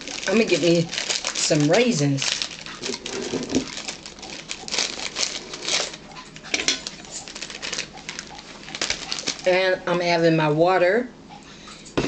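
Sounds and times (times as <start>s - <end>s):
plastic sleeve crinkling: 0.0s - 9.7s.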